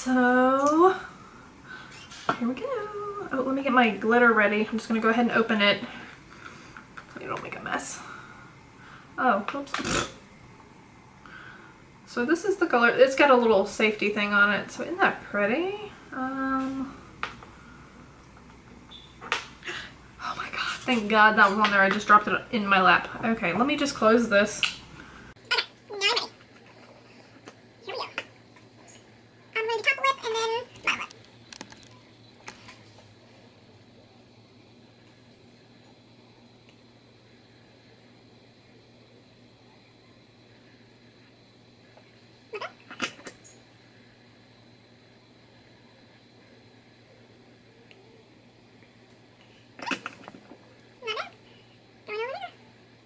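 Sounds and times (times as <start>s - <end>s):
small clicks and knocks: 30.8s - 32.6s.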